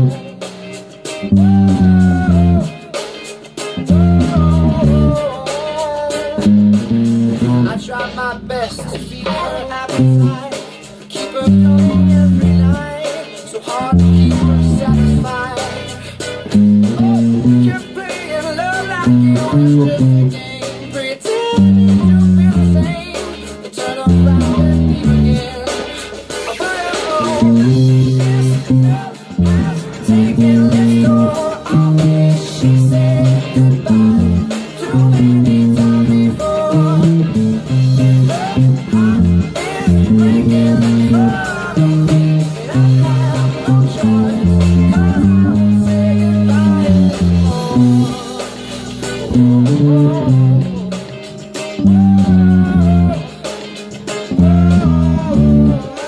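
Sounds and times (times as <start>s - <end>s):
electric bass fingerstyle: 0.0s - 56.0s
person singing: 0.0s - 56.0s
pop-rock backing track: 0.0s - 56.0s.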